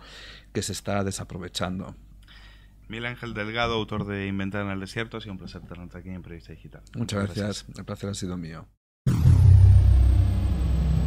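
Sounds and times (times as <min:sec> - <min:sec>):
deep rumbling sound effect: 0:09.1 - 0:11.0
high tone sliding down: 0:09.1 - 0:11.0.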